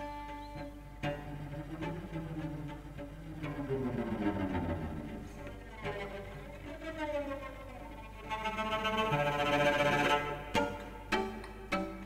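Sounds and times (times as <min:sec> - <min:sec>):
slow string music: 0:00.0 - 0:12.0.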